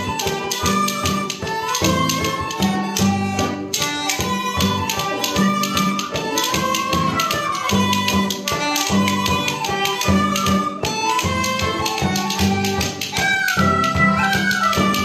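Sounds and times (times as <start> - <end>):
banjo: 0.0 - 15.0
frame drum beat: 0.0 - 15.0
guitar: 0.0 - 15.0
tin whistles playing melody: 0.0 - 15.0.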